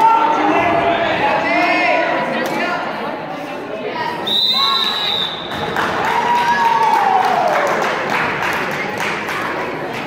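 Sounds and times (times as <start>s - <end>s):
spectators shouting and cheering: 4.1s - 8.4s
referee's whistle blast: 4.3s - 5.6s.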